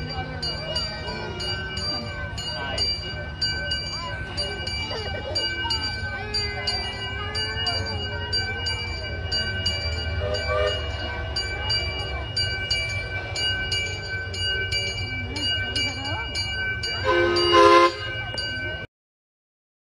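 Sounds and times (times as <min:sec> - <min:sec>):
locomotive bell ringing: 0:00.0 - 0:18.9
train rumble: 0:00.0 - 0:18.9.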